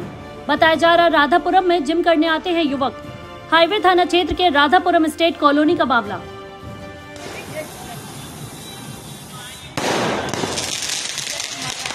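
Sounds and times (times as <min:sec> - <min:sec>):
firework burst: 0:07.2 - 0:11.9
high firework hiss: 0:07.2 - 0:11.9.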